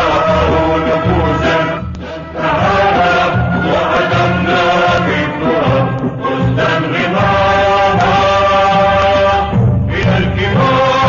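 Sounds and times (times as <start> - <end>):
choir singing: 0.0 - 11.0
orchestral accompaniment: 0.0 - 11.0.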